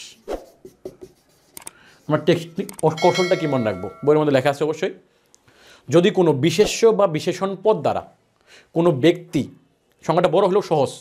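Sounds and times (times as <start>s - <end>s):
marker writing on whiteboard: 0.3s - 3.2s.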